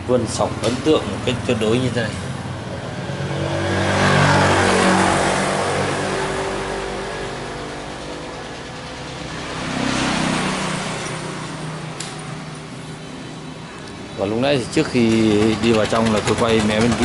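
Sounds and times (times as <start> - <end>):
vehicles passing by: 0.0 - 17.0.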